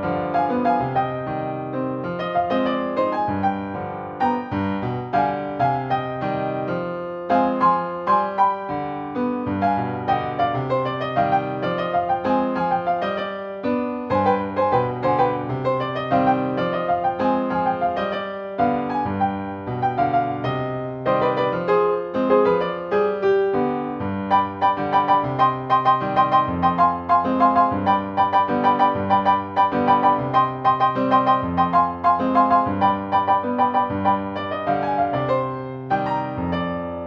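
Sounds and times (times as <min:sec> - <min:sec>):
solo piano salsa song: 0:00.0 - 0:37.0.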